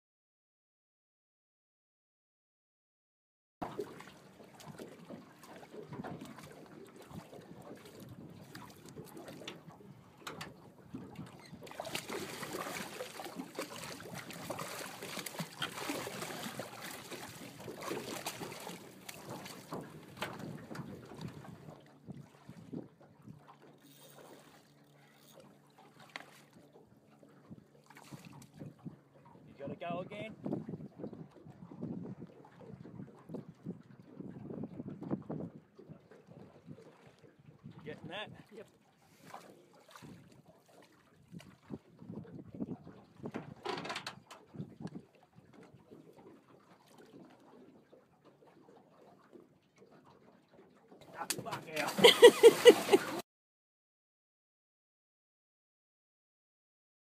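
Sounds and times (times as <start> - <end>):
water splashing and slapping: 3.6 - 53.2.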